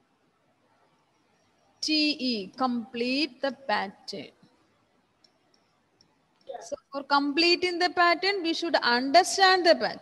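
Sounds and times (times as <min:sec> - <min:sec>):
woman speaking: 0:01.8 - 0:04.4, 0:06.6 - 0:10.0.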